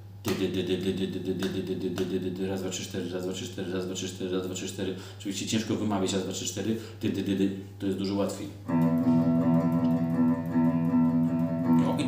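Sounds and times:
electric guitar picked notes: 8.7 - 12.0.

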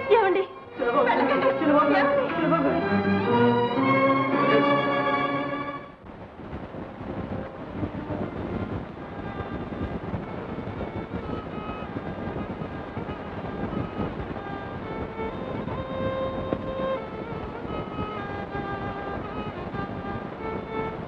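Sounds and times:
sparse film score melody: 0.1 - 6.0
loud crackling hiss: 6.2 - 21.0.

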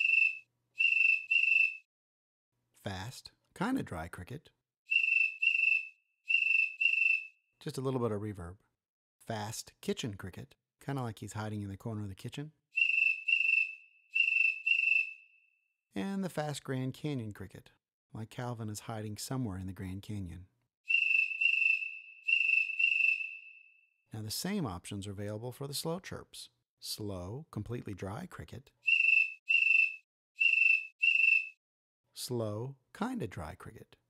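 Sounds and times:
high cricket chirps with echo: 0.0 - 1.8, 4.9 - 7.3, 12.8 - 15.5, 20.9 - 23.9, 28.9 - 31.5.

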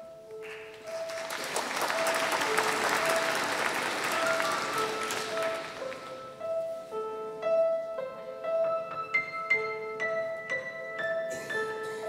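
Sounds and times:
quiet instrumental melody: 0.0 - 12.0
audience applauding: 0.5 - 6.4.

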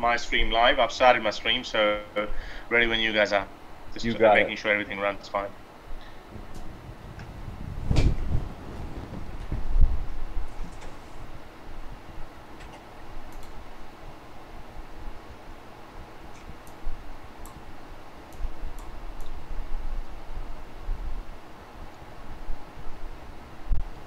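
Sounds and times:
low rumble and hiss: 0.0 - 24.0
faint clicks: 12.6 - 13.6.

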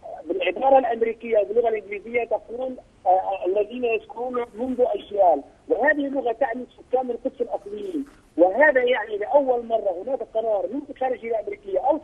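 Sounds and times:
man talking over telephone: 0.0 - 12.0.

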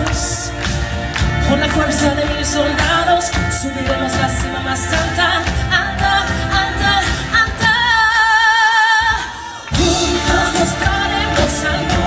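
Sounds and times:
live pop band: 0.0 - 12.0
woman singing: 1.4 - 12.0.

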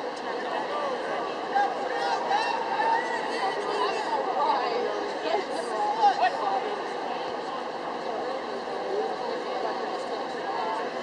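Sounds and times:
background murmur of large space: 0.0 - 11.0
indistinct chatter of voices: 0.0 - 11.0.

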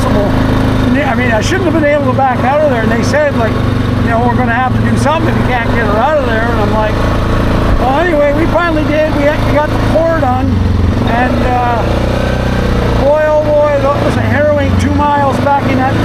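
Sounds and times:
man talking: 0.0 - 7.0, 7.7 - 12.0, 12.9 - 16.0
atv engine humming: 0.0 - 16.0.

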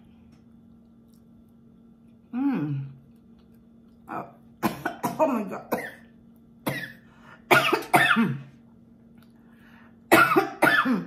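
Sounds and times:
woman coughing hard: 4.6 - 6.0, 6.6 - 8.5, 10.1 - 11.0.

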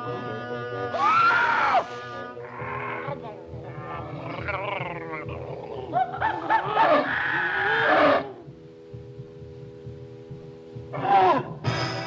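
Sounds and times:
steady held notes: 0.0 - 12.0
cartoon monster roars and cries: 0.9 - 3.2, 3.9 - 8.4, 11.0 - 11.6.

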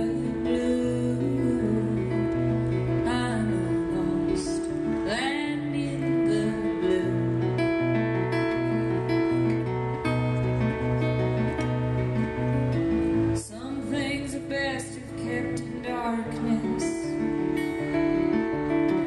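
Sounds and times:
woman singing: 0.0 - 9.6, 13.4 - 17.5
strummed acoustic guitar: 0.0 - 19.0.

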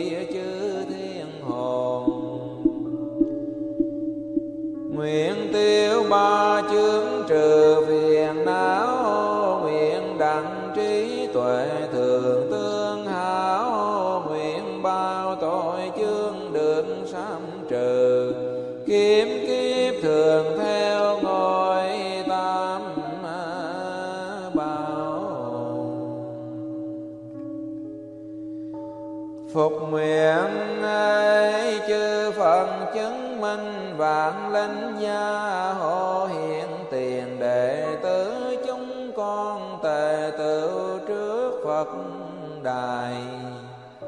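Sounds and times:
melodic chanting: 0.0 - 44.0.

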